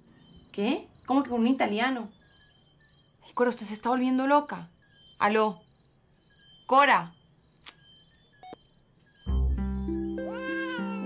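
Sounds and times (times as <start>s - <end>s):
crickets chirping: 0.0s - 10.6s
sharp click: 7.6s - 7.9s.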